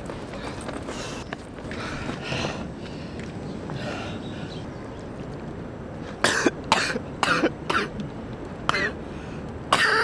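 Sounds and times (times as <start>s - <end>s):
man coughing and puffing: 6.2s - 8.0s, 9.7s - 10.0s.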